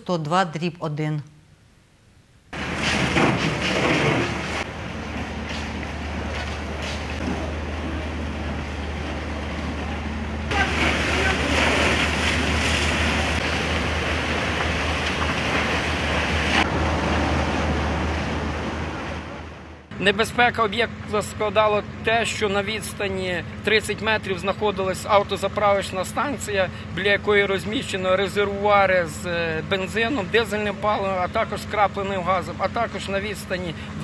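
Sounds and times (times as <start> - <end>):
fire hoses spraying water: 2.6 - 19.3.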